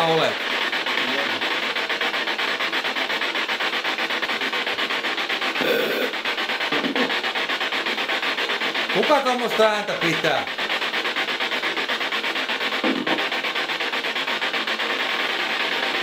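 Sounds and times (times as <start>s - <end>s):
rapid pulsing rasping scrape: 0.0s - 16.0s.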